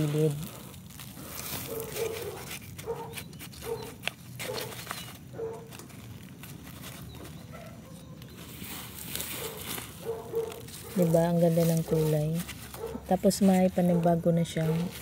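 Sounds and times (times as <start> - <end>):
rustling of dry rice hulls: 0.0 - 15.0
dog barking: 1.7 - 4.7, 5.3 - 5.7, 7.5 - 8.2, 9.4 - 11.1, 12.8 - 13.1, 13.9 - 15.0.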